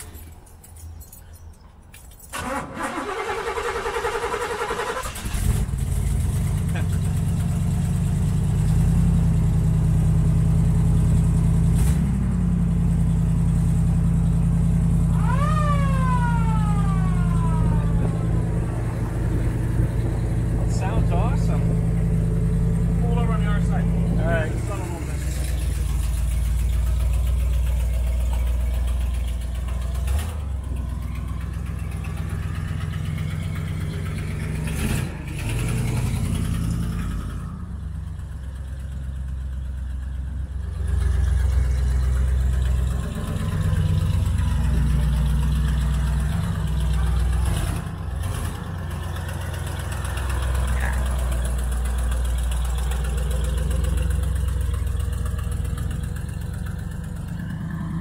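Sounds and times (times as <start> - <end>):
car engine idling: 2.3 - 58.0.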